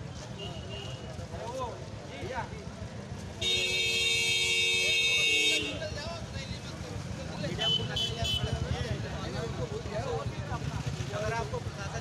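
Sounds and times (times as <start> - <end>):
crowd of voices: 0.0 - 12.0
vehicle horn: 3.4 - 5.8.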